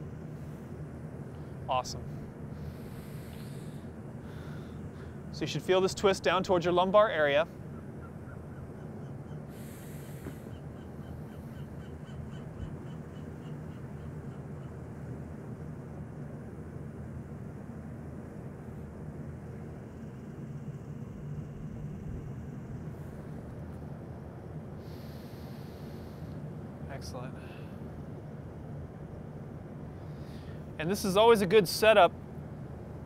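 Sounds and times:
low outdoor rumble: 0.0 - 33.0
short hisses of breath: 2.5 - 5.2, 9.5 - 10.5, 24.8 - 26.4.

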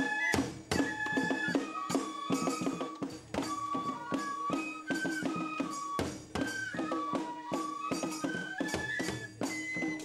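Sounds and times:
high bamboo flute: 0.0 - 10.0.

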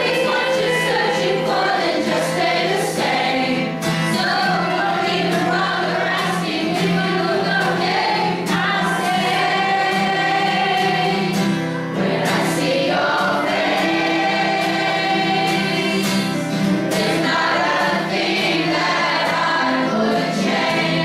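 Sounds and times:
acoustic guitar: 0.0 - 21.0
choir singing pop song: 0.0 - 21.0.

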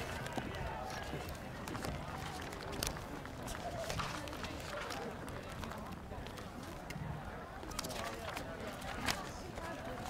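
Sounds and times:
faint distant voices: 0.0 - 10.0.

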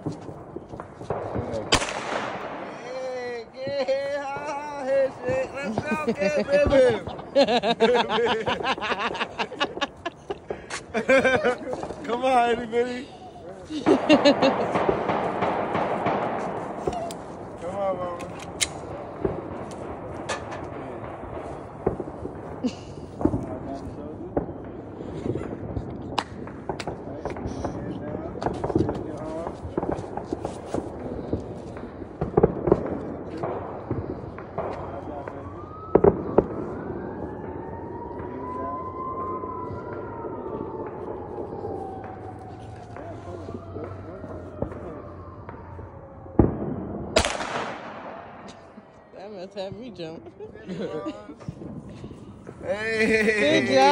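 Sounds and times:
firework bangs: 0.0 - 50.2, 51.0 - 53.9
distant siren wailing: 0.0 - 53.9.

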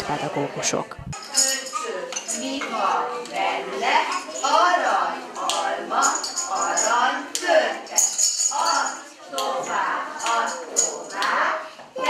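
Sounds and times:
children chattering: 0.0 - 12.0
crockery clinking: 1.2 - 11.6.

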